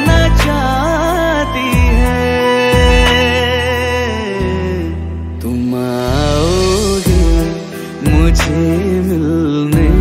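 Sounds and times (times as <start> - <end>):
romantic film song: 0.0 - 10.0
sustained bass notes: 0.0 - 10.0.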